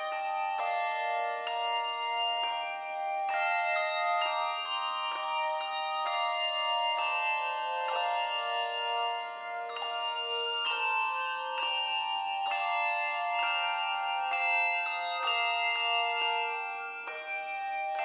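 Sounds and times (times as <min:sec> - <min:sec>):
handbell choir playing hymn: 0:00.0 - 0:18.0.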